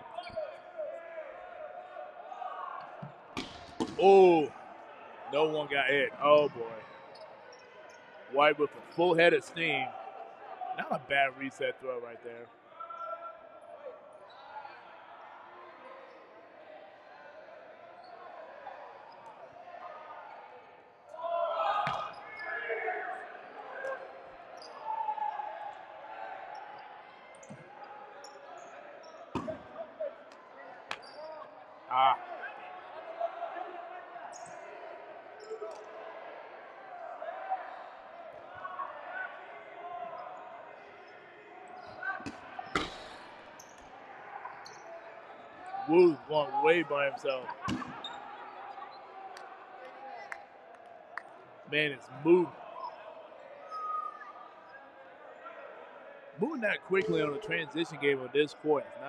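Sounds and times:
players shouting: 0.0s - 7.3s, 8.3s - 17.1s, 19.8s - 54.5s, 55.2s - 59.0s
crowd chatter: 0.0s - 59.0s.

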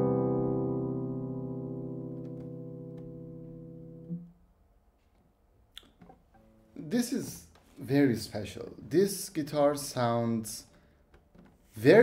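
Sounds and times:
classical guitar chord ringing: 0.0s - 4.4s.

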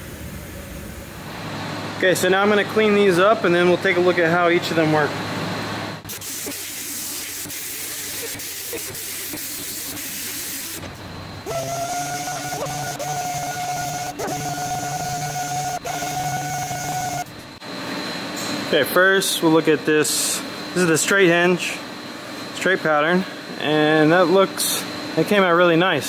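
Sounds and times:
pitched whine: 0.0s - 25.8s
sander hissing on metal: 6.1s - 17.6s.

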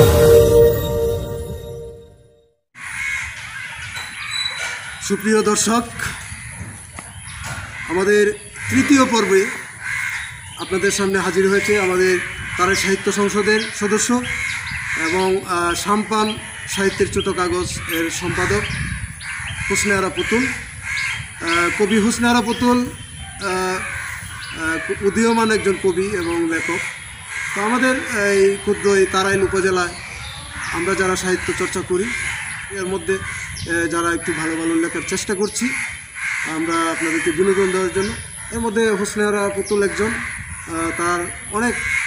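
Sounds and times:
birds calling: 2.8s - 42.0s.

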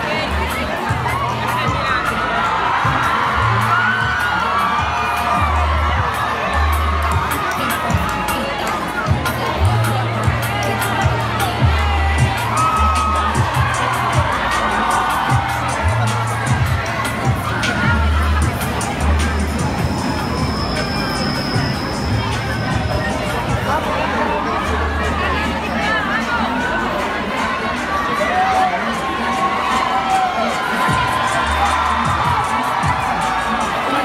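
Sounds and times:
crowd cheering and shouting: 0.0s - 34.0s
music with deep bass: 0.0s - 34.0s.

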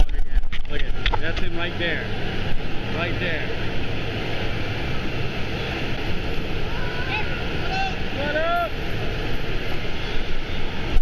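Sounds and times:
water rushing and splashing: 0.0s - 11.0s.

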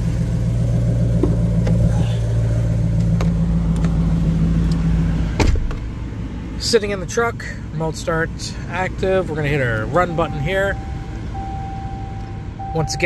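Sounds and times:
truck engine idling: 0.0s - 13.0s
car door shutting: 1.1s - 2.1s, 4.7s - 5.9s.

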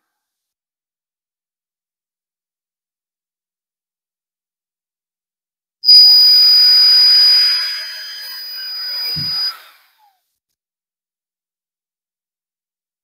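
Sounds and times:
cordless drill whining: 5.9s - 10.0s.

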